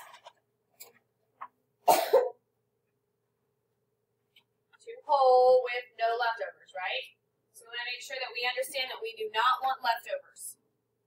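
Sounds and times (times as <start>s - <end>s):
person coughing: 1.8s - 2.4s.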